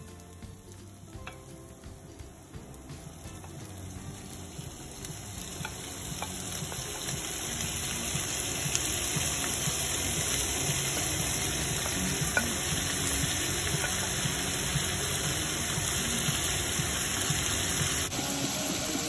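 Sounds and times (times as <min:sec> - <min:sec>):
meat sizzling in hot oil: 0:00.0 - 0:19.0.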